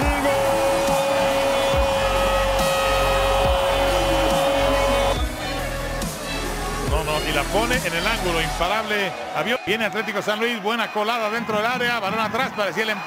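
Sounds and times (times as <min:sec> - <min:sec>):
music with thumping beat: 0:00.0 - 0:08.0
commentator shouting: 0:00.0 - 0:13.0.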